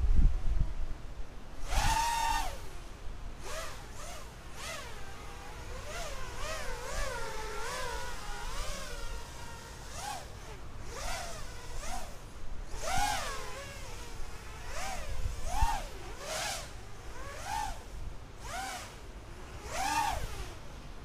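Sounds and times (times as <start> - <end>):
drone motors whining: 1.6 - 21.0.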